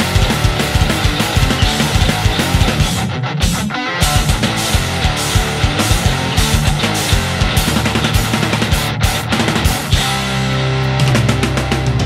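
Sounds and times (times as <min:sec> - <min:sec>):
bass guitar: 0:00.0 - 0:12.0
distorted electric guitars: 0:00.0 - 0:12.0
driving drums: 0:00.0 - 0:12.0.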